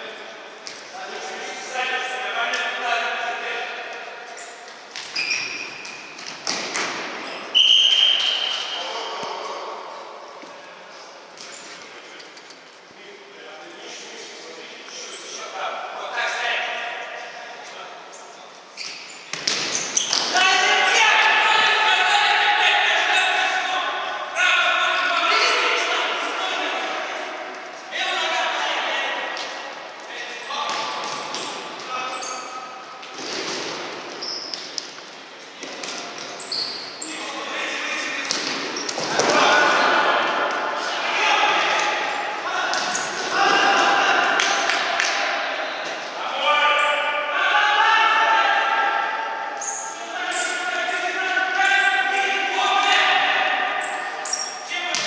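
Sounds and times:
voices calling and shouting: 13.0 - 55.0.

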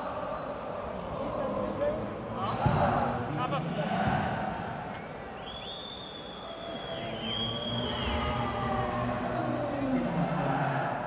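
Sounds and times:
low crowd voices: 0.0 - 11.0
stadium crowd ambience: 0.0 - 11.0.

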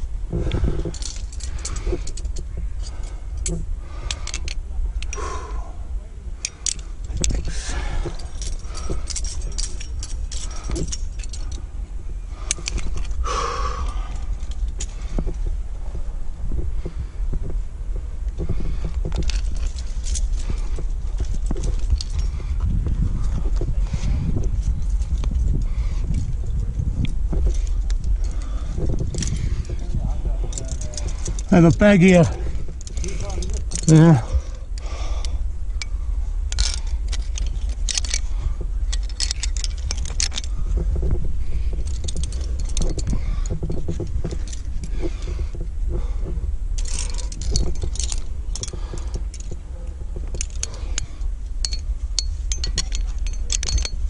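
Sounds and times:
metal climbing gear clinking: 0.0 - 5.8, 6.4 - 17.6, 18.2 - 54.0
wind rumble on microphone: 0.0 - 54.0.

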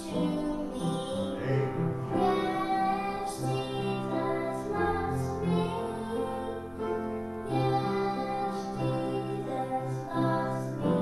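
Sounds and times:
accompanying music: 0.0 - 11.0
girl singing into microphone: 0.0 - 11.0.

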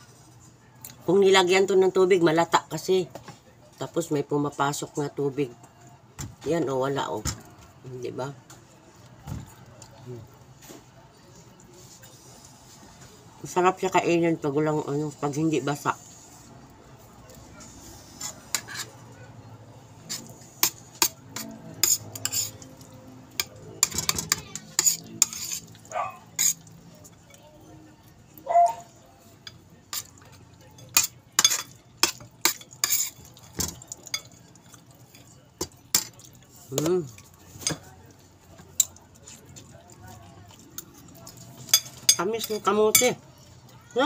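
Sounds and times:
cutlery clinking on plates: 20.1 - 27.4, 29.4 - 39.3, 41.1 - 43.2.

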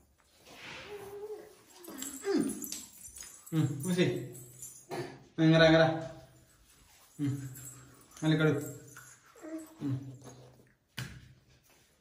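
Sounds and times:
toddler whining: 0.8 - 2.7, 9.4 - 10.3.

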